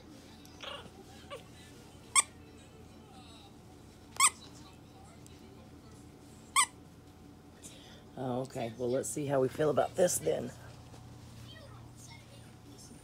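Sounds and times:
dog toy squeaking: 4.2s - 4.4s.

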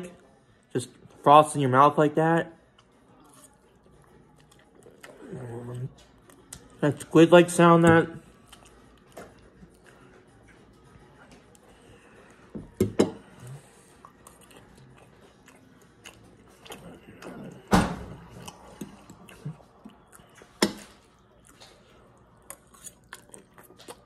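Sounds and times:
person chewing spaghetti: 2.6s - 6.8s, 8.2s - 24.0s.

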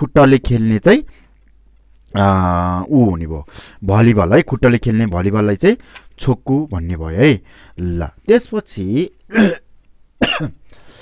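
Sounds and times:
breathy exhale: 3.5s - 3.8s, 10.7s - 11.0s
man coughing: 9.3s - 10.6s.

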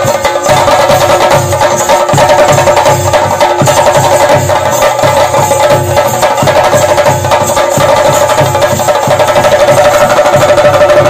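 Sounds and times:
fast loud drumming: 0.0s - 11.0s.

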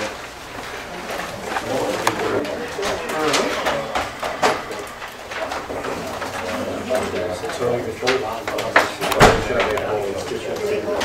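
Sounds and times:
murmured chatter: 0.0s - 11.0s
papers rustling: 0.0s - 11.0s.

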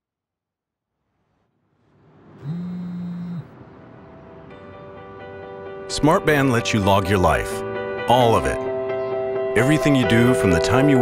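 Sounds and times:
vibration motor buzzing: 2.3s - 3.6s.

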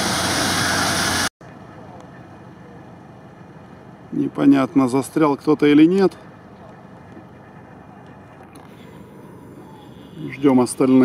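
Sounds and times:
distant off-road vehicles humming: 0.0s - 11.0s.

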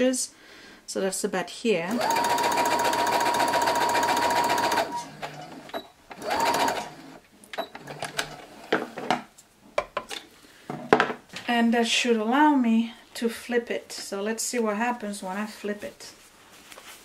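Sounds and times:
electric sewing machine stitching: 1.9s - 7.2s.

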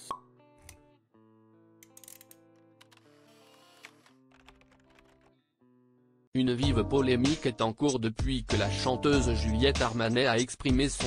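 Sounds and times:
music: 0.0s - 11.0s.

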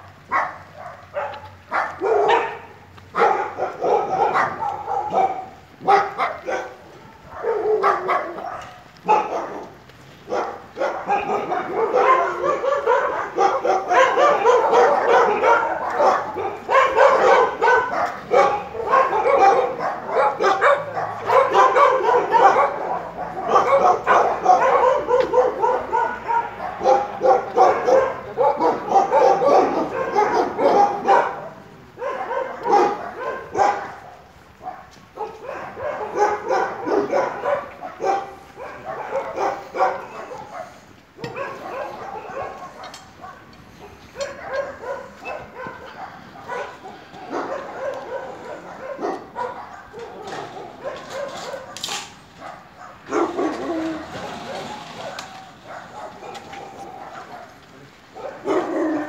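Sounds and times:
dogs barking loudly: 0.0s - 59.0s.

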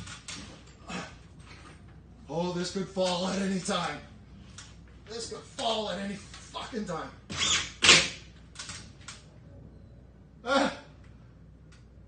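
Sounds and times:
man straining grunt: 10.4s - 11.0s.

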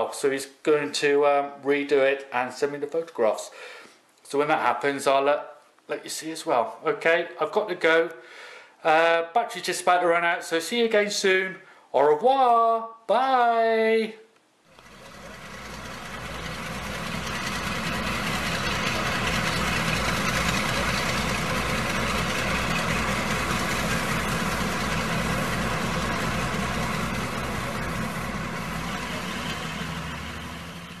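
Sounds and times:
engine idling: 14.7s - 31.0s.

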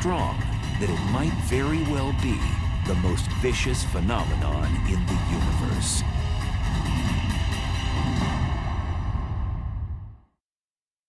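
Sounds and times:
dramatic background music: 0.0s - 10.2s.

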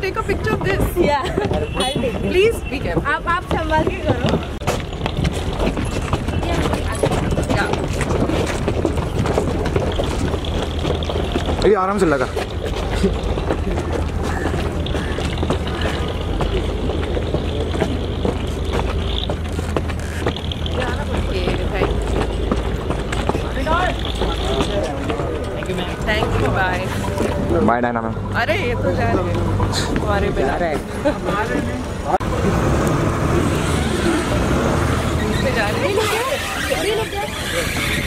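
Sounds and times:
motorboat engine rumbling: 0.0s - 38.0s
faint voices: 33.3s - 38.0s.

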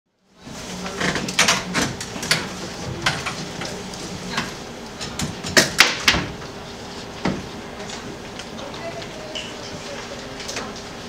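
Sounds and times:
low room murmur: 0.3s - 11.0s.

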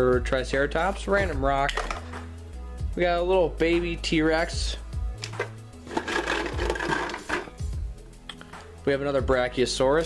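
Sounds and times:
plastic toys clattering: 5.3s - 7.5s.

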